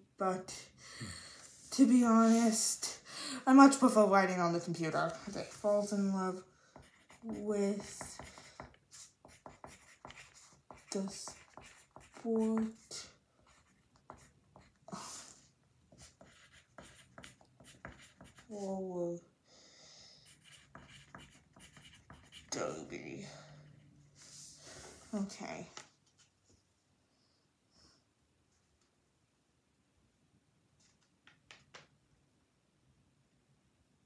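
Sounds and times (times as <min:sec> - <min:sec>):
pencil scratching on paper: 0:05.2 - 0:14.9, 0:15.9 - 0:18.7, 0:20.2 - 0:23.0.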